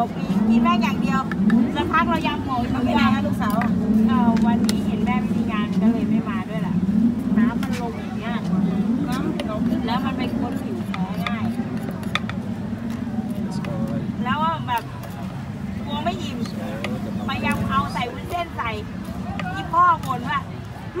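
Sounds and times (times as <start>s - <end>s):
people talking: 0.0s - 21.0s.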